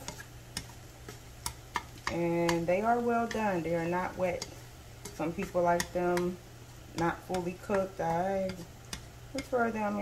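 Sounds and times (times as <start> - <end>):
chopsticks scraping a frying pan: 0.0 - 9.6
steady low hum: 0.0 - 10.0.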